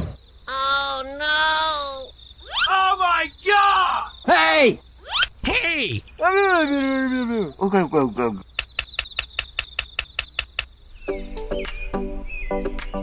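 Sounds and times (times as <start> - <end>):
even clicks: 8.5 - 10.7
background music: 11.0 - 13.0.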